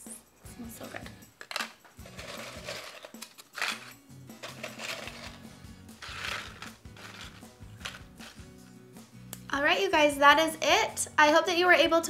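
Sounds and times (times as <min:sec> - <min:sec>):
quiet background music: 0:00.0 - 0:12.0
tortilla chips rustling: 0:02.1 - 0:05.4.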